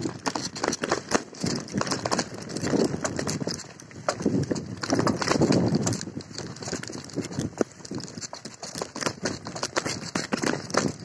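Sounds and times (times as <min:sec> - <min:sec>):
bicycle rattling over dirt path: 0:00.0 - 0:11.0
tyres crunching on rough ground: 0:00.0 - 0:11.0.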